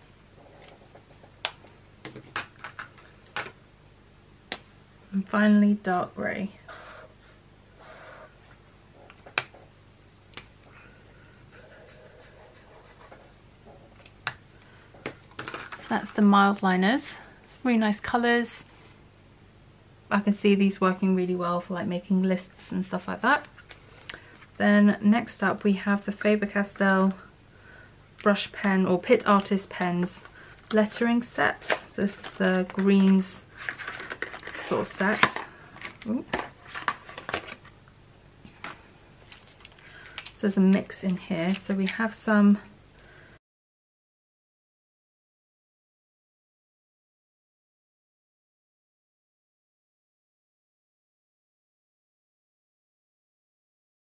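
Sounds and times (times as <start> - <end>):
pens clicking and tapping on desk: 0.6 - 3.6
felt tip scratching on paper: 11.5 - 13.4.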